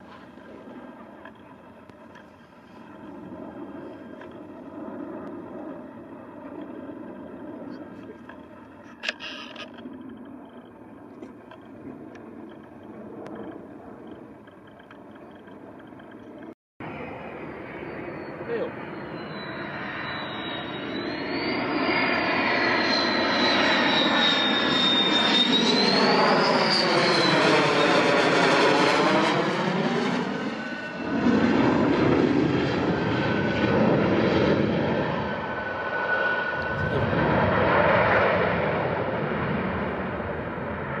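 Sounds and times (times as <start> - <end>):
fighter jet engines whining: 0.0 - 41.0.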